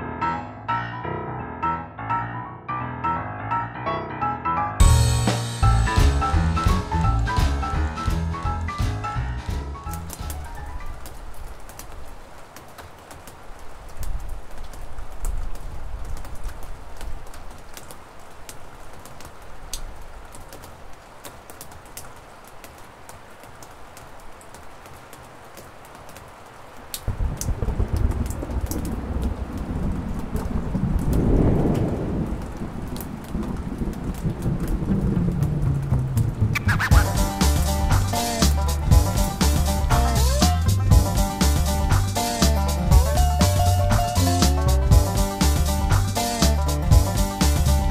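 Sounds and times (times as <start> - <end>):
rain falling: 4.8 - 47.9
thunder rumbling: 27.0 - 47.9.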